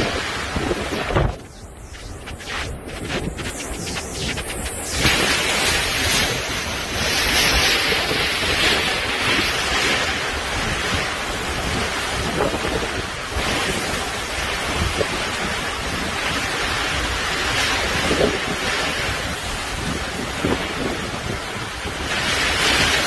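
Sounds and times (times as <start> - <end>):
heavy rain: 0.0 - 1.4, 2.8 - 19.1
strong wind gusts: 0.0 - 23.0
wind buffeting microphone: 0.0 - 23.0.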